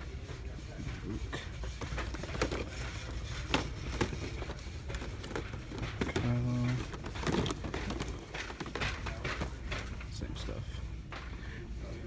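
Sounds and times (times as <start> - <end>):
cardboard boxes clicking and rustling: 2.0 - 9.9.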